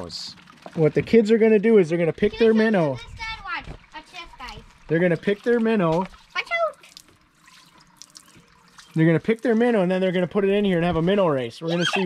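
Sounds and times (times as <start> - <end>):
water trickling into water: 0.0 - 12.0
small water drips: 3.6 - 10.3.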